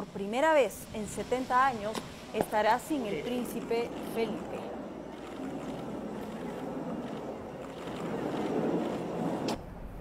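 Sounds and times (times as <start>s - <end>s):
outdoor ambience rush: 0.0s - 10.0s.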